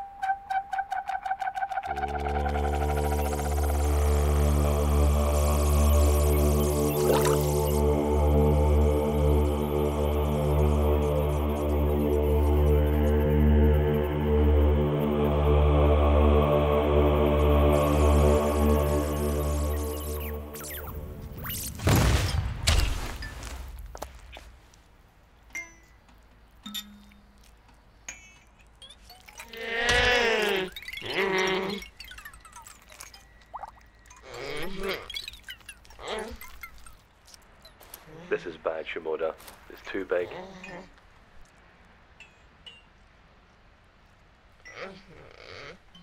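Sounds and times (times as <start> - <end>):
high chirps: 0.0 - 8.1, 17.3 - 21.8, 28.1 - 37.8.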